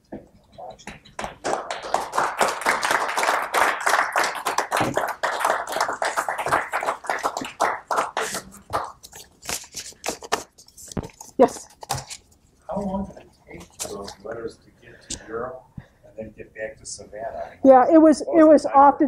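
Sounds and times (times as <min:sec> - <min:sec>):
audience applause: 0:01.2 - 0:09.0.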